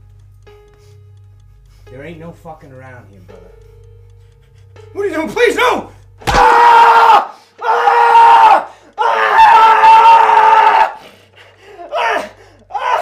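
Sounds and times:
man screaming in pain: 0:06.3 - 0:11.0, 0:11.8 - 0:13.0.

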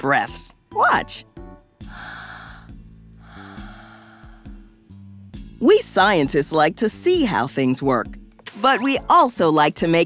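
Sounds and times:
woman breathing deeply: 0:01.8 - 0:05.0.

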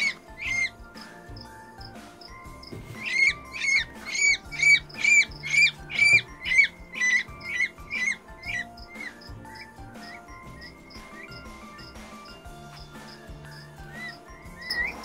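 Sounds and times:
background music: 0:00.0 - 0:15.0
peachick peeping: 0:00.0 - 0:15.0.

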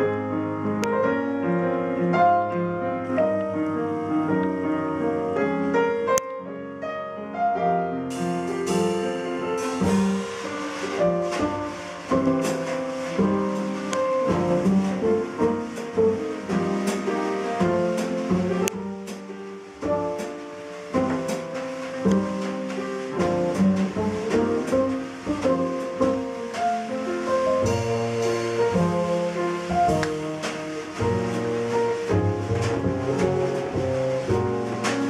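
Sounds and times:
acoustic piano: 0:00.0 - 0:35.0
drum kit with cymbals: 0:08.0 - 0:35.0
pizzicato double bass: 0:08.2 - 0:35.0.

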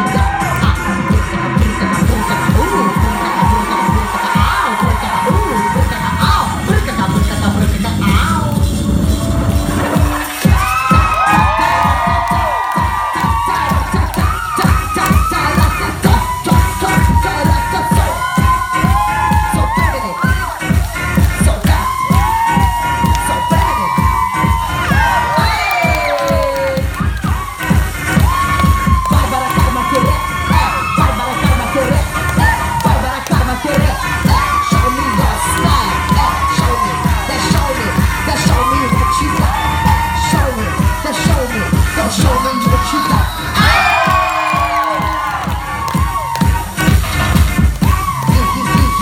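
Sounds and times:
audience cheering and shouting: 0:00.0 - 0:49.0
loud dance music: 0:00.0 - 0:49.0.

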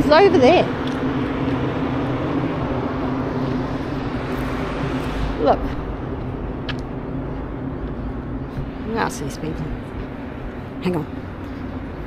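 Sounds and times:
constant low hum: 0:00.0 - 0:12.0
road traffic noise: 0:00.0 - 0:12.0.

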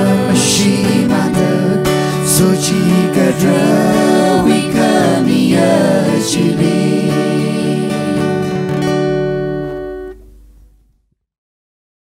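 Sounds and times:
acoustic guitar strummed chord: 0:00.0 - 0:10.7.

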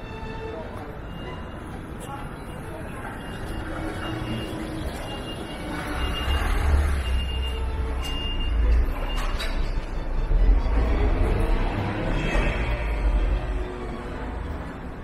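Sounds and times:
people talking: 0:00.4 - 0:07.0.

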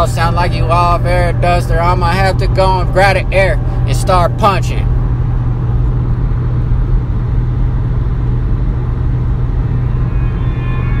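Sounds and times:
deep hum: 0:00.0 - 0:11.0
low rumble: 0:00.0 - 0:11.0
faint high tones: 0:09.4 - 0:11.0.

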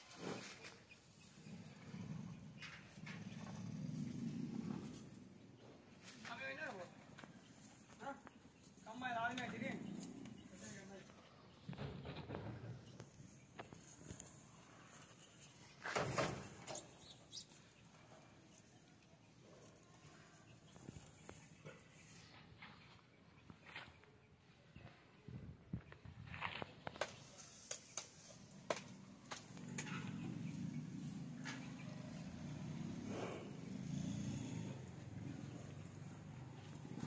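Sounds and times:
water buffalo noisy puffs: 0:27.3 - 0:37.0
water buffalo low sound: 0:31.0 - 0:36.0.

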